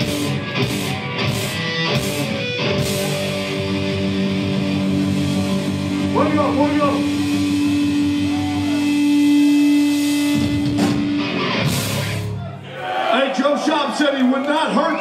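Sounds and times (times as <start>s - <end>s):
distorted electric guitar: 0.0s - 12.4s
drum or cymbal hits: 4.7s - 12.3s.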